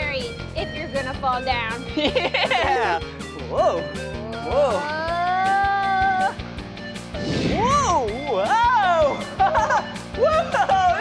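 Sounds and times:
background music: 0.0s - 11.0s
people crying whoa: 4.4s - 6.4s.

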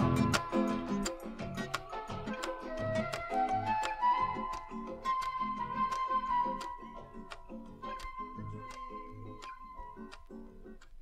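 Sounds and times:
picked guitar notes: 0.0s - 11.0s.

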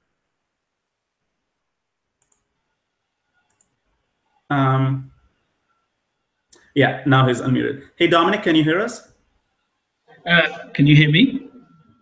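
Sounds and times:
faint computer mouse clicks: 2.2s - 2.5s, 3.4s - 3.8s.

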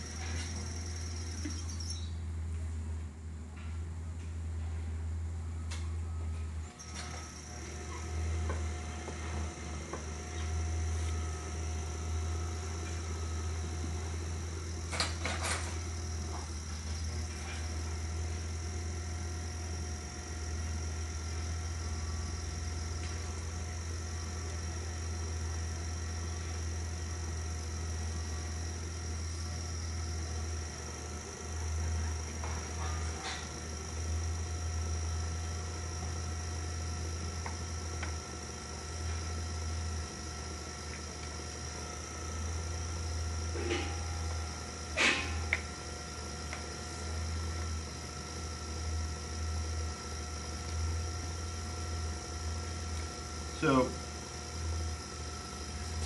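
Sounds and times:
potter's wheel motor hum and whine: 0.0s - 56.0s.

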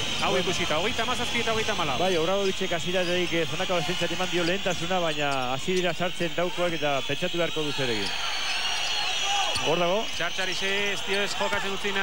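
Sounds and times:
arena crowd noise: 0.0s - 12.0s
commentator speaking: 0.2s - 8.1s, 9.6s - 12.0s.

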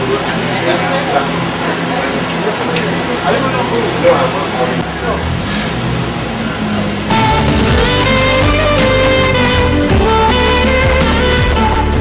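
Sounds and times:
faint voices talking: 0.0s - 5.4s
engine humming: 0.0s - 12.0s.

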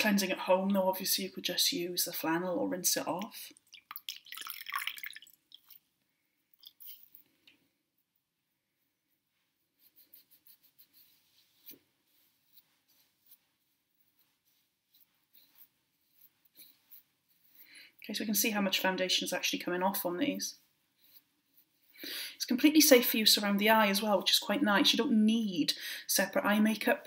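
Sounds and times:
gauze wiping over wet skin: 9.2s - 17.8s.

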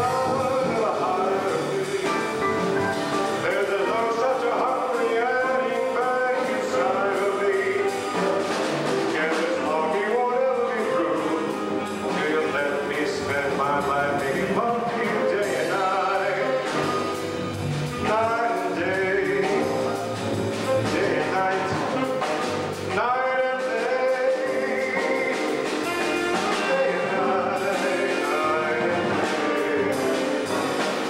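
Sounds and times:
jazz combo playing: 0.0s - 31.0s.

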